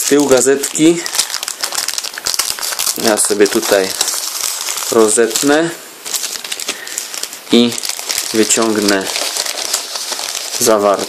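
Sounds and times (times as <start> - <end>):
plastic film crinkling: 0.0 - 11.0.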